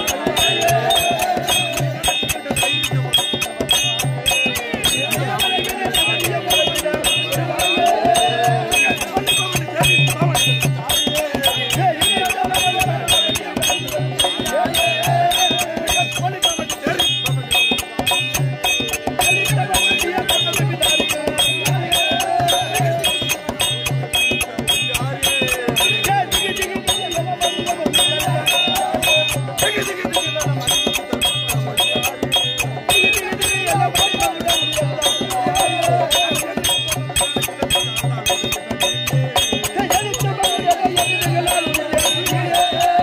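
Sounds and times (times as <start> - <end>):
drum beating: 0.0 - 43.0
hand cymbals clashing: 0.0 - 43.0
wavering melody: 0.0 - 43.0.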